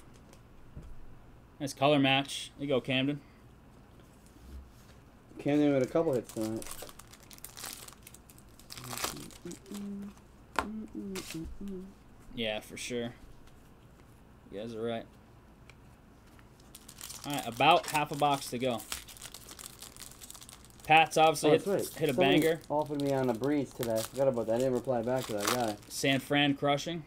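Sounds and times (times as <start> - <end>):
foil wrapper crinkling: 5.8 - 9.9, 16.5 - 26.4.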